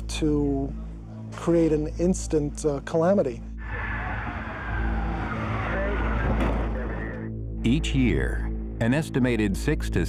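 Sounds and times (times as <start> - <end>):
car tyres skidding: 3.6 - 7.2
road noise: 3.6 - 7.3.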